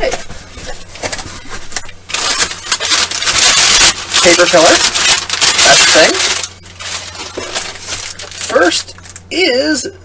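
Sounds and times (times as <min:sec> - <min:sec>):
tissue paper rustling and crinkling: 0:00.0 - 0:09.2.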